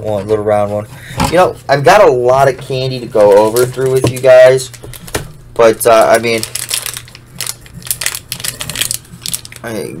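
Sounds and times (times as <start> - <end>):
plastic wrappers crinkling: 3.2 - 5.2, 5.8 - 9.8.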